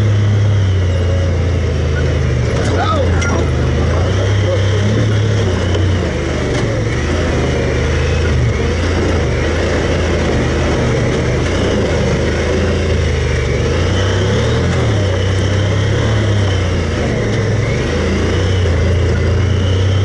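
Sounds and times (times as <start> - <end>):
rumble of ride on dirt trail: 0.0 - 20.0
utility vehicle engine running: 0.0 - 20.0.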